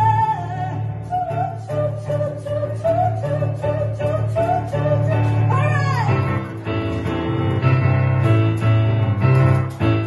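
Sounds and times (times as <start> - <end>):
woman singing: 0.0 - 6.2
keyboard accompaniment: 0.0 - 10.0.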